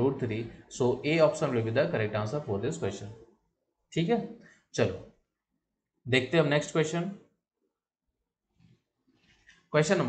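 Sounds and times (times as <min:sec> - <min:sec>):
man speaking: 0:00.0 - 0:03.3, 0:03.9 - 0:05.2, 0:06.0 - 0:07.3, 0:09.8 - 0:10.0.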